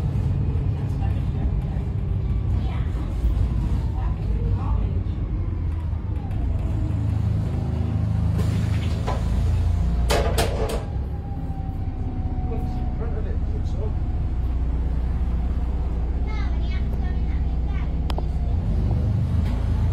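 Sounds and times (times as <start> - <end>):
bus engine rumbling: 0.0 - 19.9.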